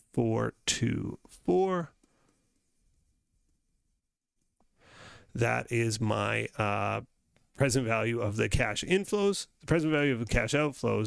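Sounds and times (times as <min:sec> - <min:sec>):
faint breath: 0:04.7 - 0:05.3.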